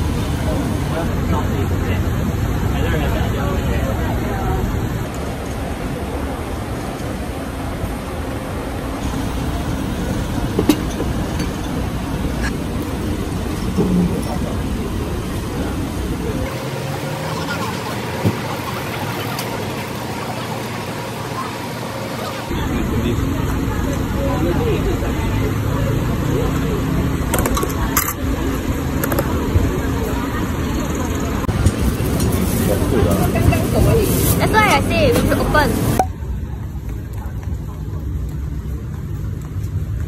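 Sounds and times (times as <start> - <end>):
indistinct voices: 0.0 - 36.1
low rumbling background noise: 0.0 - 40.0.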